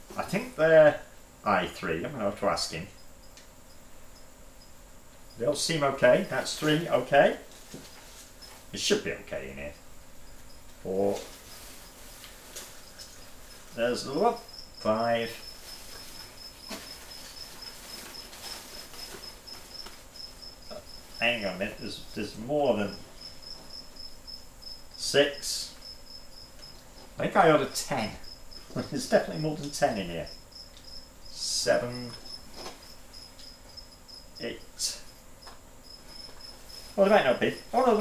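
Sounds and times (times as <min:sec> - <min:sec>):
cricket chirping: 0:01.1 - 0:38.0
paper rustling: 0:15.6 - 0:20.2.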